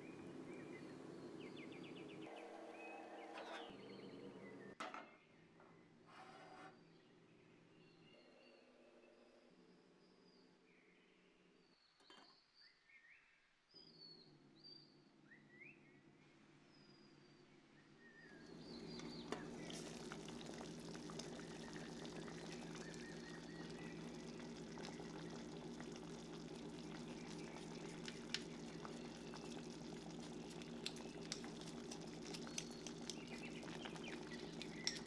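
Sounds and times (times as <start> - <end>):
water bubbling in a pan: 18.4 - 35.0
faint chirps: 21.2 - 25.6.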